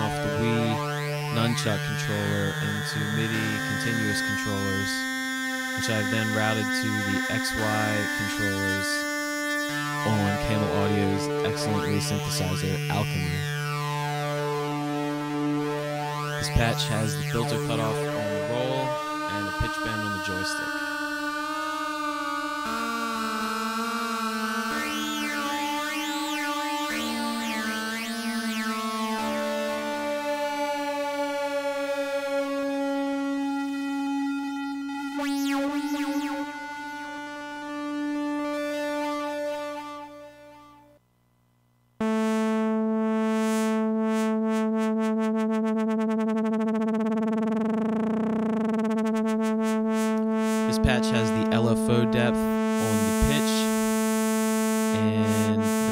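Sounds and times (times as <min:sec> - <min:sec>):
synth note with pulsing wobble: 0:00.0 - 0:40.8, 0:42.0 - 0:55.9
synthesizer with filter sweep: 0:00.0 - 0:41.0, 0:42.0 - 0:55.9.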